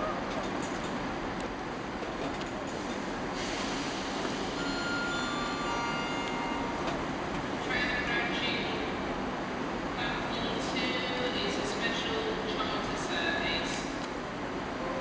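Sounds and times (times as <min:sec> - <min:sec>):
steam train rumbling and hissing: 0:02.6 - 0:05.9.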